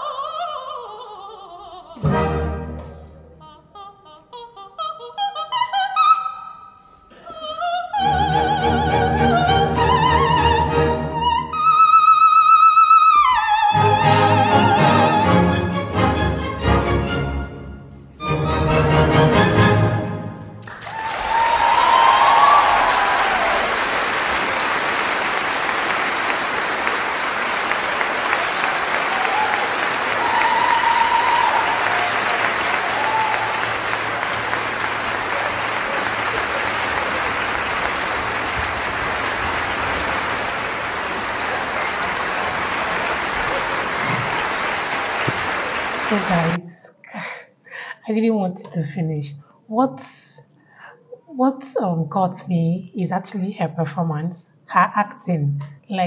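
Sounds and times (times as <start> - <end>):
audience applauding: 20.5 - 46.6.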